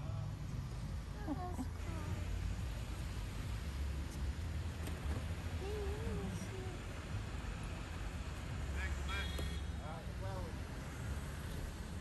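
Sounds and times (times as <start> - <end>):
traffic rumble: 0.0 - 12.0.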